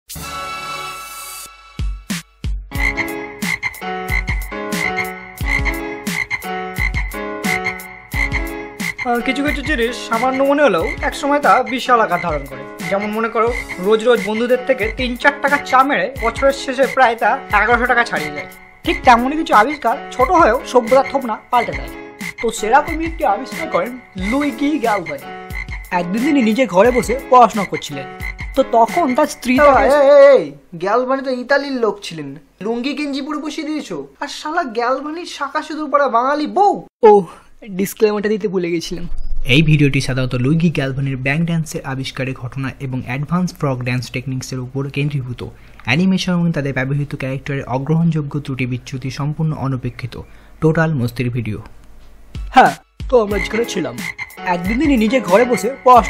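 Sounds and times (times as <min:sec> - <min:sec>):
frog croaks: 0:02.7 - 0:30.0, 0:53.2 - 0:55.5.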